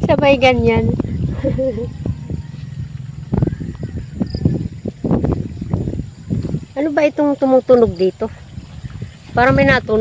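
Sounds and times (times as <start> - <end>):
low rumble of flowing water: 0.0 - 10.0.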